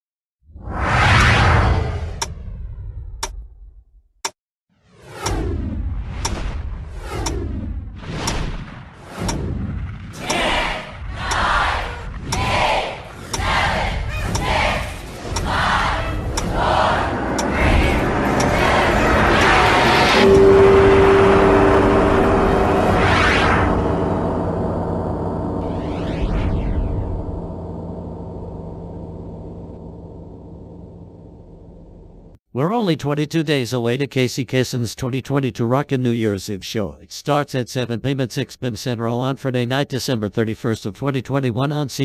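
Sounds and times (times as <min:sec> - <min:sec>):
whoosh: 0:00.5 - 0:03.2, 0:04.8 - 0:31.4
deep rumble: 0:00.6 - 0:03.9, 0:05.2 - 0:32.4
rushing roar: 0:10.2 - 0:30.0
held tone: 0:15.3 - 0:32.3.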